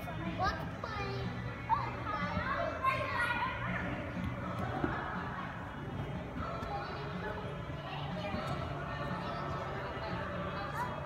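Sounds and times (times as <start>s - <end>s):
children calling and chattering: 0.0s - 5.6s.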